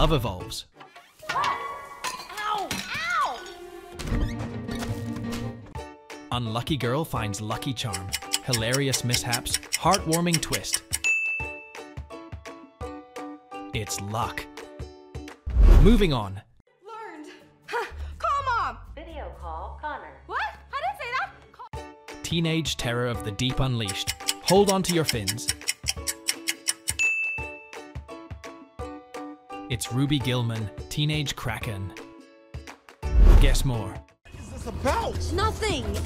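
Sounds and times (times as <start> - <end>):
background music of struck notes: 7.4 - 13.0, 21.8 - 29.3.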